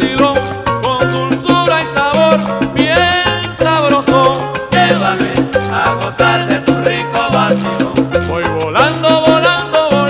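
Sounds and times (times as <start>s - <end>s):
salsa music: 0.0s - 10.0s.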